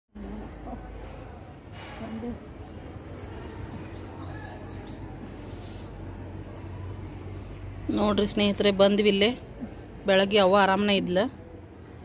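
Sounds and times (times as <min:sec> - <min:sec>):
small bird chirping: 0:02.5 - 0:05.1.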